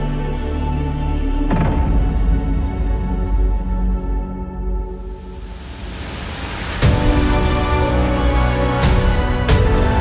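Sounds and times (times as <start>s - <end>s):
music: 0.0s - 10.0s
rising noise sweep: 5.0s - 8.2s.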